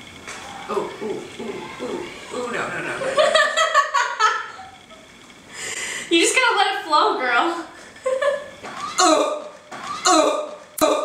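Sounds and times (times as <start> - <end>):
women laughing: 3.0 - 5.0, 7.8 - 8.6.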